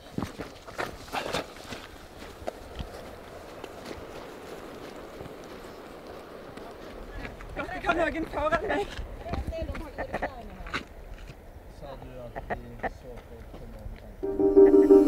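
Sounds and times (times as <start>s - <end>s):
running footsteps: 0.0s - 11.4s
outdoor background hiss: 0.0s - 15.0s.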